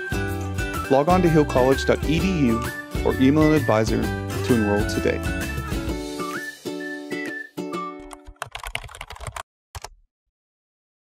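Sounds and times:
background music: 0.0 - 8.4
keyboard typing clicks: 8.1 - 10.0.

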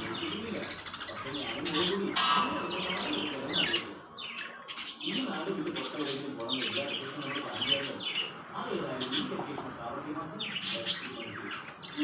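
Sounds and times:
high bird chirp: 0.0 - 9.6
birds calling: 0.0 - 12.0.

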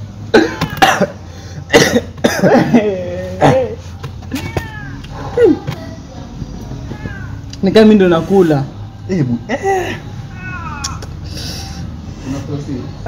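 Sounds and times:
man coughing hard: 0.3 - 3.8.

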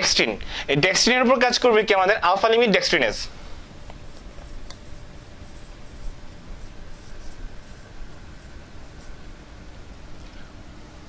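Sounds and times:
marker squeaking on whiteboard: 4.0 - 9.2.

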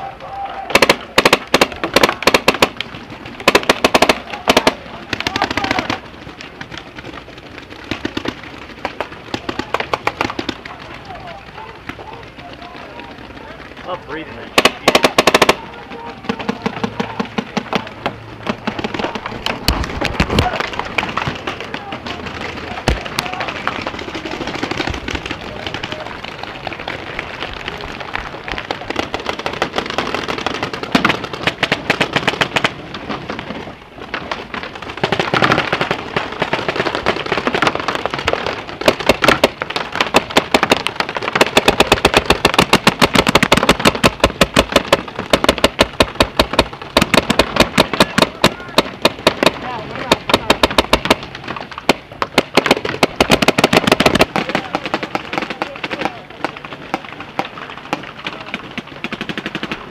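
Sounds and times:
paintball markers firing: 0.7 - 33.4, 34.0 - 59.9.

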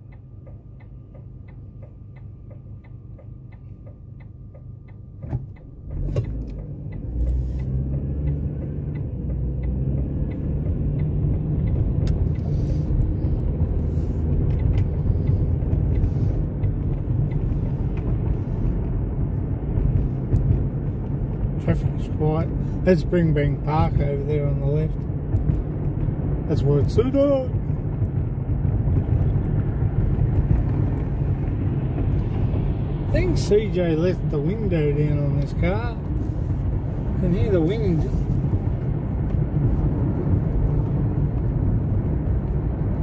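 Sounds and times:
car engine and tyre noise: 0.0 - 43.0
turn indicator ticking: 0.0 - 43.0.

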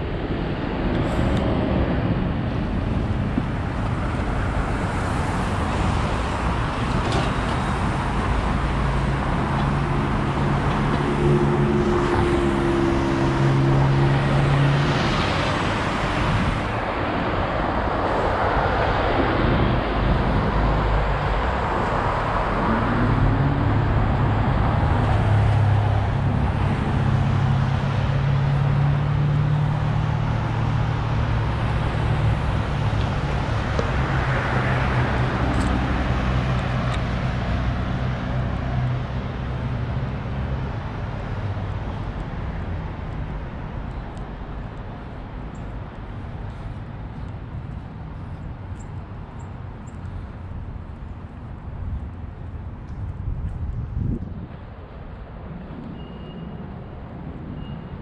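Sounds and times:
steady road noise: 0.0 - 58.0
vehicles passing: 0.0 - 58.0.

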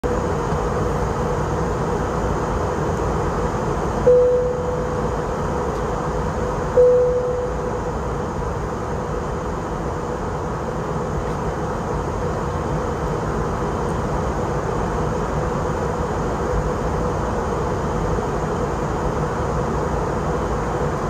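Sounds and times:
airplane cabin engine rush: 0.0 - 21.0
cabin chime: 4.1 - 5.0, 6.8 - 7.6.

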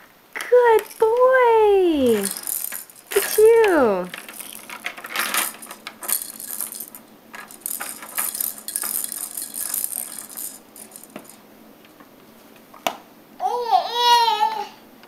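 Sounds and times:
plastic toy clicking and rattling: 2.0 - 11.4
plastic balls knocking: 2.1 - 11.4.

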